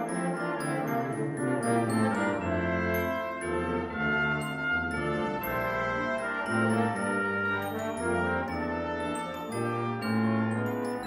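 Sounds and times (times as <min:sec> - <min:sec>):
bell-like tones: 0:00.0 - 0:11.0
brass and percussion ensemble: 0:00.0 - 0:11.0.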